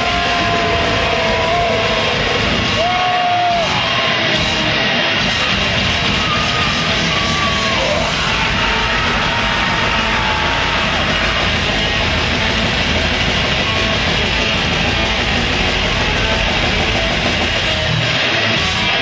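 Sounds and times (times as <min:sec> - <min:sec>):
distorted electric guitars: 0:00.0 - 0:19.0
drums: 0:00.0 - 0:19.0.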